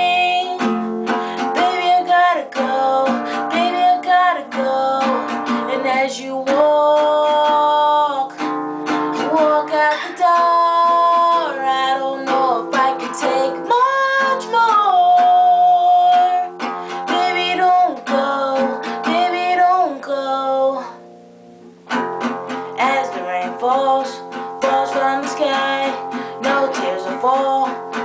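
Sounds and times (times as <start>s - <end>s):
woman singing: 0.0s - 21.2s, 22.3s - 28.0s
acoustic guitar strumming: 0.0s - 28.0s.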